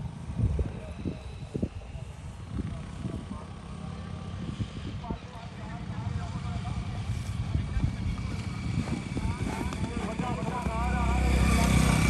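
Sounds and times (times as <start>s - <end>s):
wind buffeting microphone: 0.0s - 3.6s, 4.2s - 5.3s, 6.6s - 12.0s
vehicle engine rumble: 0.0s - 12.0s.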